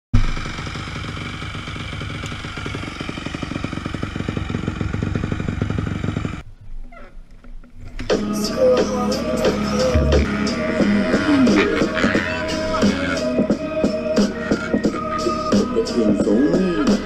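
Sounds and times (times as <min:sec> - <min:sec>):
dirt bike engine idling: 0:00.2 - 0:06.7, 0:08.0 - 0:17.0.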